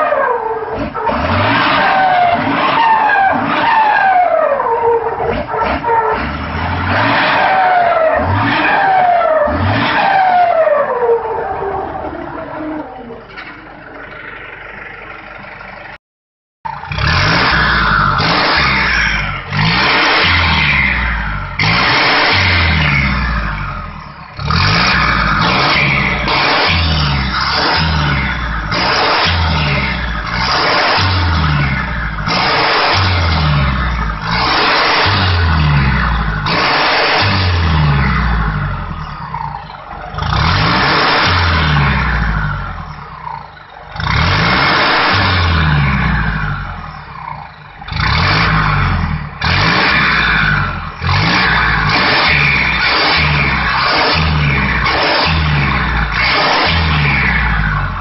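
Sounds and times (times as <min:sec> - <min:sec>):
diesel engine revving: 0:00.0 - 0:16.0, 0:16.7 - 0:58.0.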